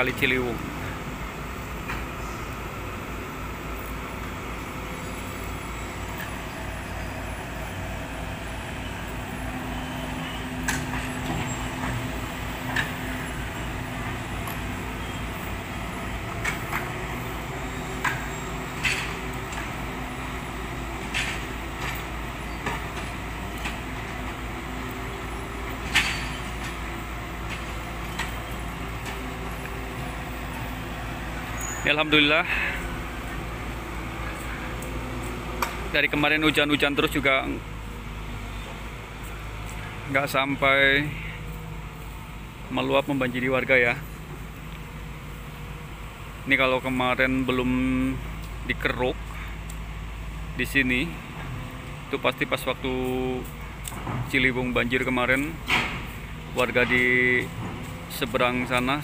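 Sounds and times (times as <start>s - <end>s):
diesel excavator engines running: 0.0s - 59.0s.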